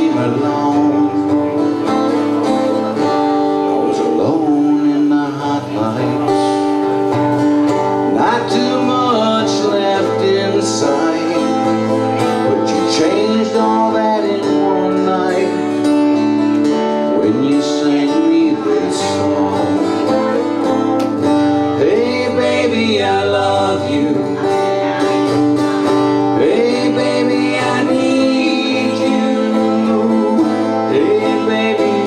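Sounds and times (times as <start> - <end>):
acoustic guitar playing: 0.0 - 32.0
man singing: 0.0 - 32.0.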